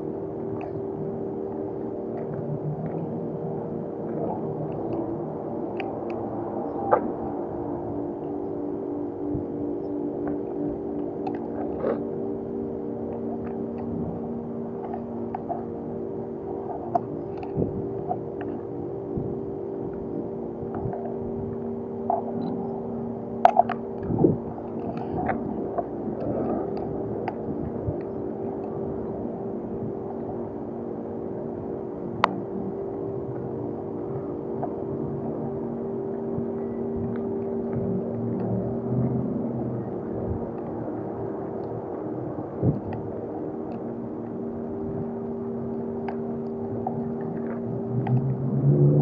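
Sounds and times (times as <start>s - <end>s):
ambient sustained music: 0.0s - 49.0s
low rumble: 0.0s - 49.0s.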